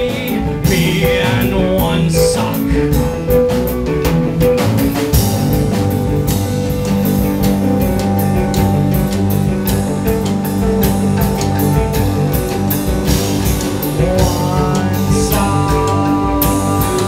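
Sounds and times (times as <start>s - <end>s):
bass guitar: 0.0s - 17.0s
distorted electric guitars: 0.0s - 17.0s
drum kit beat: 0.0s - 17.0s.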